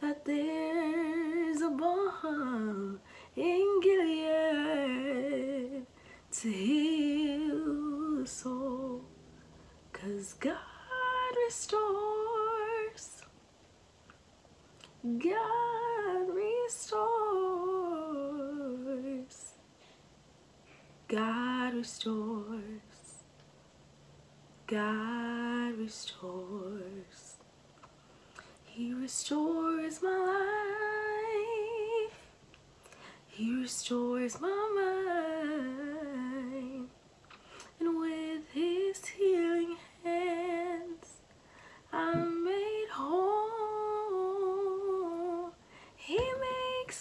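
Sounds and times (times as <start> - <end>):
woman singing unaccompanied: 0.0 - 9.2, 9.9 - 13.4, 14.8 - 19.6, 21.0 - 23.3, 24.6 - 27.4, 28.7 - 32.3, 33.3 - 37.0, 37.7 - 41.3, 41.9 - 47.0.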